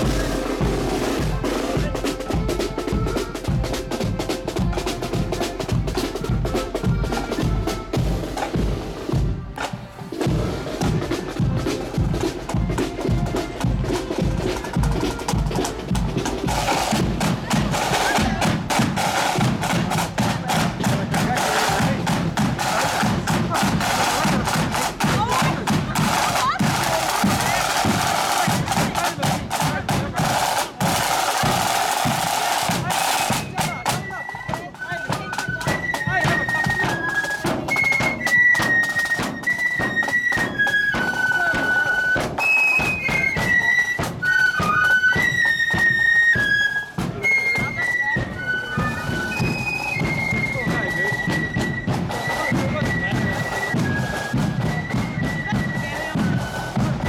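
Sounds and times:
flutes playing high tune: 0:00.0 - 0:57.0
side drums beating: 0:00.0 - 0:57.0.

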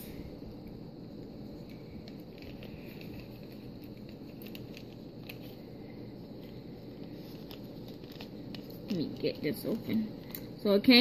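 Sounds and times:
low background hum: 0:00.0 - 0:11.0
plastic bag crinkling: 0:02.0 - 0:05.7, 0:06.3 - 0:10.4.

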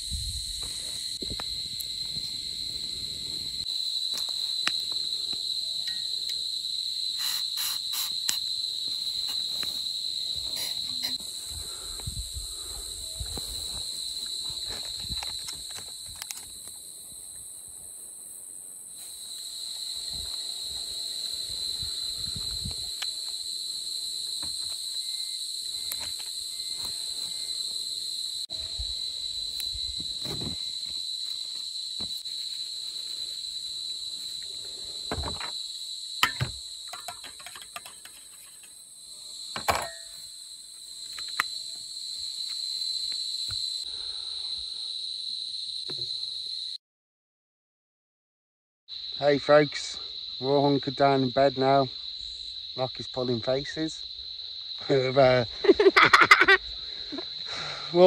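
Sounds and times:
high-pitched insect chorus: 0:00.0 - 0:46.8, 0:48.9 - 0:58.0.

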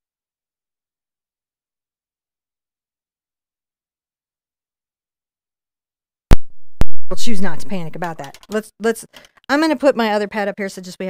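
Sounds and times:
microphone pops: 0:06.3 - 0:07.8.

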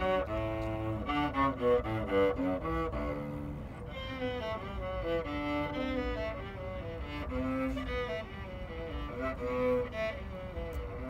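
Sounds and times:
solo cello melody: 0:00.0 - 0:11.0.

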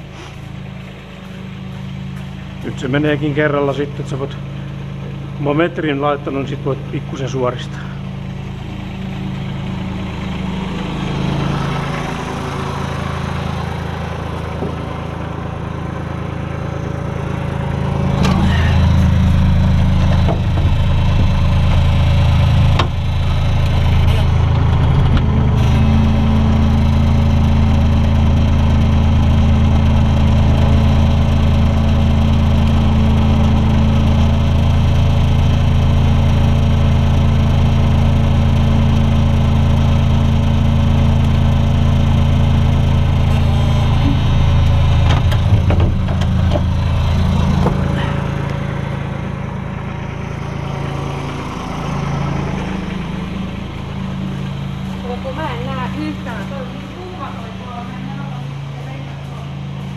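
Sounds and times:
diesel engine running hard: 0:00.0 - 0:59.9.

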